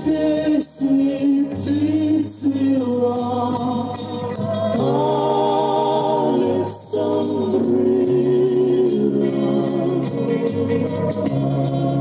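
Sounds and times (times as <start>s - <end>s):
steady ticking beat: 3.0s - 12.0s.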